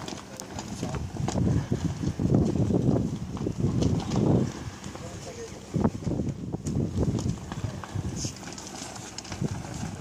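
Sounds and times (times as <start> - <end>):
footsteps on wooden deck: 0.0 - 5.2.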